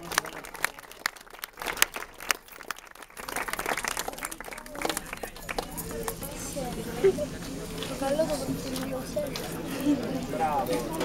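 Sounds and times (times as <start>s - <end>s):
audience clapping: 0.0s - 8.0s.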